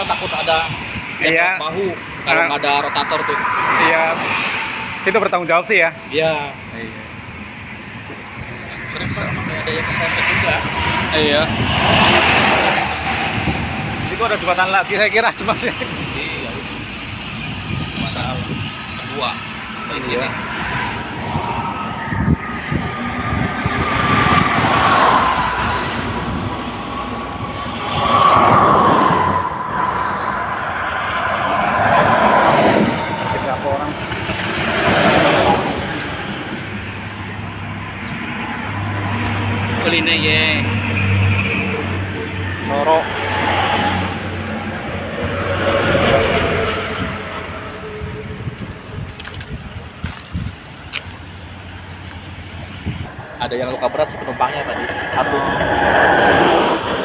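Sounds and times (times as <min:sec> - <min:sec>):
vehicles passing by: 0:00.0 - 0:57.0.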